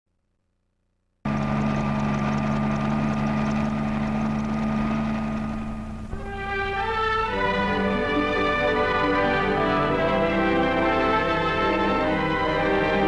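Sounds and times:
helicopter engine and rotor drone: 1.3 - 13.0.

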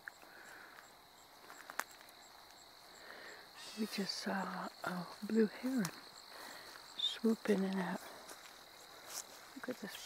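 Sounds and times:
high insect chirps: 0.0 - 10.0.

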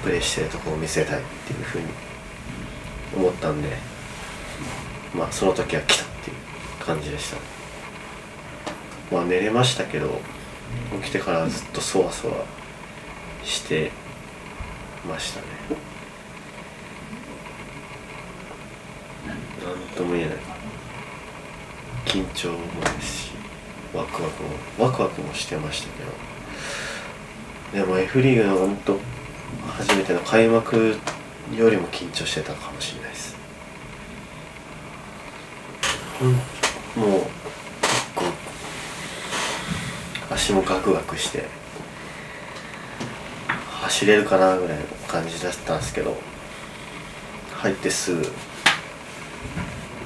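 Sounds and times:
background hiss: 0.0 - 50.0
breath-like rush of air: 26.4 - 27.2, 38.5 - 40.2, 41.9 - 43.3.

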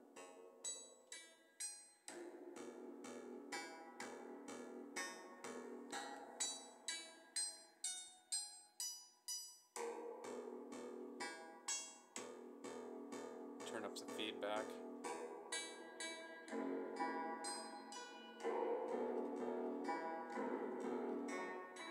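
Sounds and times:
synthesizer plucked notes: 2.1 - 7.5, 9.8 - 21.9.

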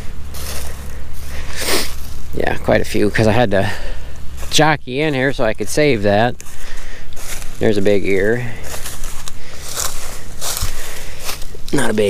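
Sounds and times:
footsteps crunching through dry stalks: 0.0 - 12.0.

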